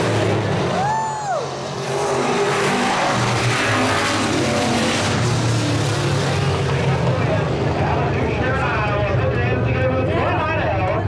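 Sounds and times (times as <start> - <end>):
race car engines droning: 0.0 - 11.0
people talking: 6.9 - 11.0.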